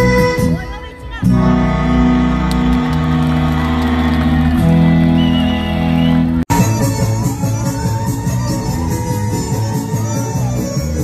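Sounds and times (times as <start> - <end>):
live music over loudspeakers: 0.0 - 11.0.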